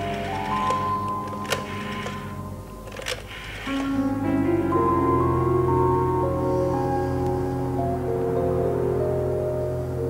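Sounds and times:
desk telephone dialling clicks: 0.0 - 2.3
music of long held tones: 0.0 - 10.0.

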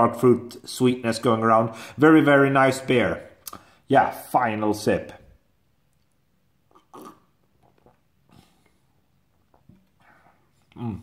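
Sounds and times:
person swallowing: 6.6 - 8.7, 9.4 - 11.0
person slurping beer: 6.7 - 8.8.

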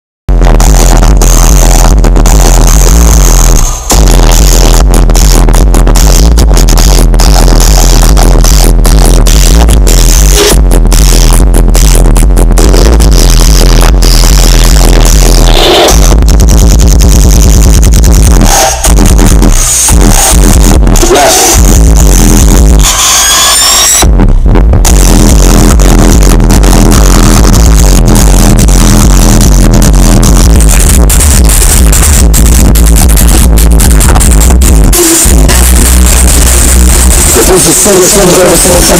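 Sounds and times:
loud electronic music with heavy bass: 0.3 - 38.9.

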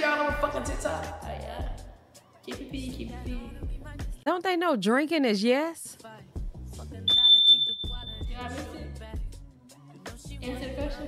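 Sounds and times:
high electronic beep: 7.1 - 8.4.

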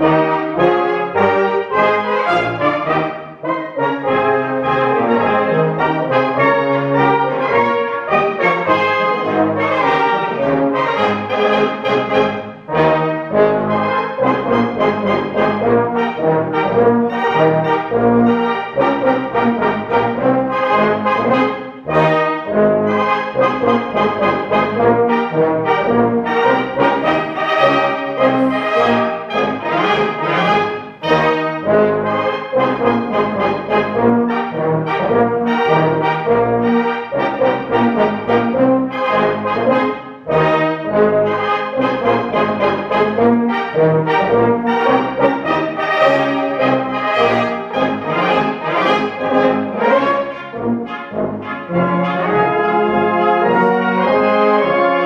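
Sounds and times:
brass band playing dance tune: 0.0 - 55.0.

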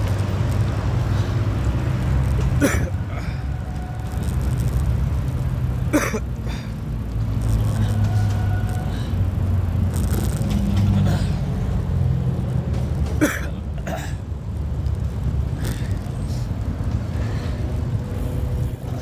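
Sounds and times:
wind and road noise: 0.0 - 19.0.

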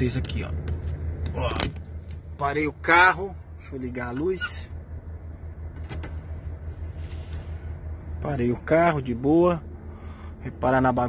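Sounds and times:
diesel truck engine idling: 0.0 - 11.0.

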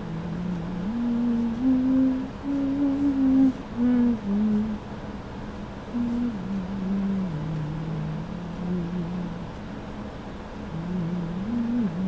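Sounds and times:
person humming a slow tune: 0.0 - 4.8, 5.9 - 9.4, 10.7 - 12.0.

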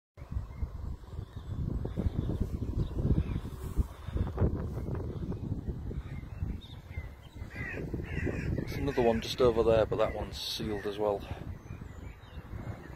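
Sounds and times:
wind buffeting microphone: 0.2 - 12.9
crow cawing: 7.4 - 9.2.

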